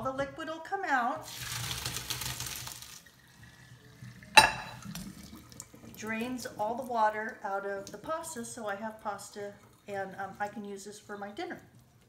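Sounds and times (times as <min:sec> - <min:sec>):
water pouring into a colander: 0:01.2 - 0:10.8.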